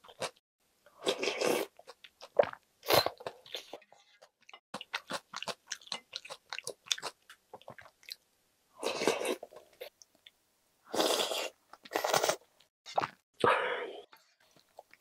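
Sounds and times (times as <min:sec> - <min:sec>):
wet chewing: 0:04.4 - 0:08.2
slurping noodles: 0:10.9 - 0:12.4.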